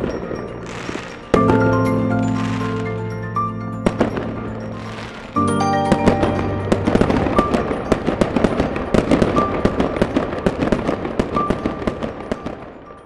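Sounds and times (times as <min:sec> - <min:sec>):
fireworks crackling and popping: 0:00.0 - 0:13.0
music with high chime note: 0:00.0 - 0:13.0.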